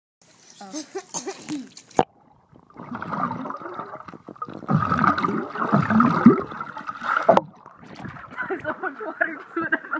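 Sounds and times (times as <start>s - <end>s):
muffled water churning: 1.9s - 8.9s.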